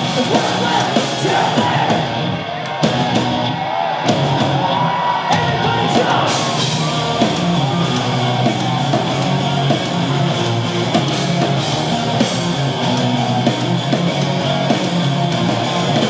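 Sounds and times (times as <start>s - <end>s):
punk rock band playing: 0.0s - 16.0s.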